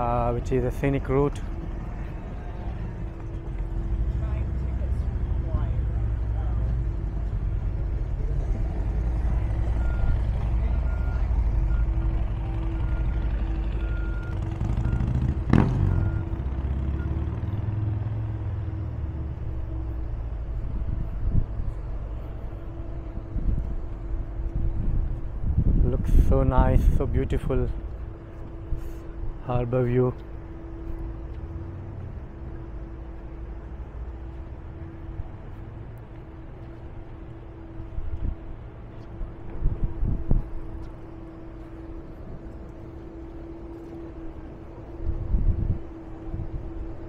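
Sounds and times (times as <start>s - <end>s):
heavy engine rumbling: 0.0s - 47.0s.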